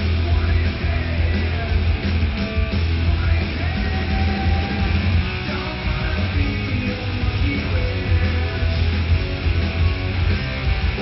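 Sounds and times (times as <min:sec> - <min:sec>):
rock music with electric guitar: 0:00.0 - 0:11.0.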